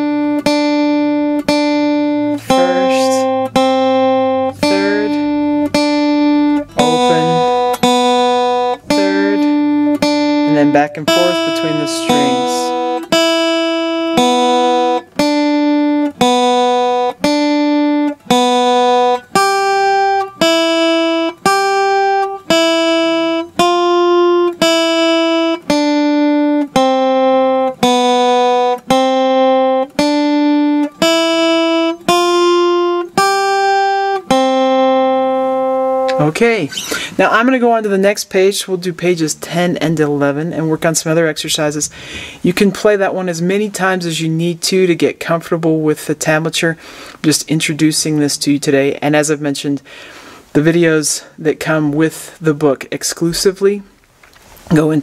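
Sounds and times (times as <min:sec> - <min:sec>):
guitar single plucked notes: 0:00.0 - 0:46.5.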